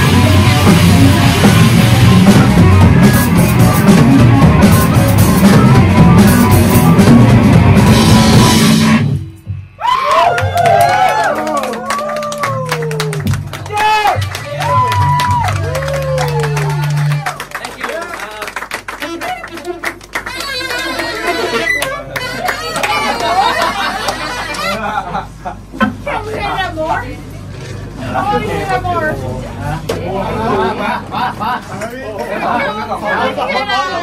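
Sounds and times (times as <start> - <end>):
audience cheering: 9.8 - 24.8
audience clapping: 10.0 - 24.8.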